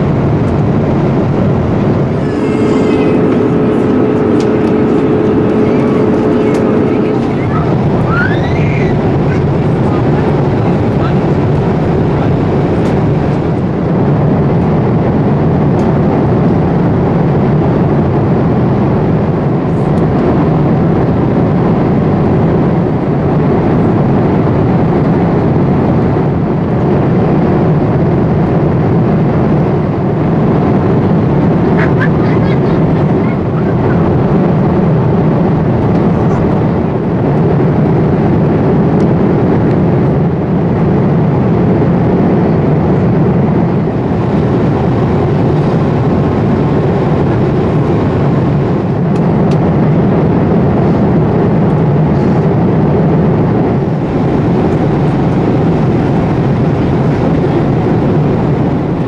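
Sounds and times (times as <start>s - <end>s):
airliner cabin noise: 0.0s - 59.0s.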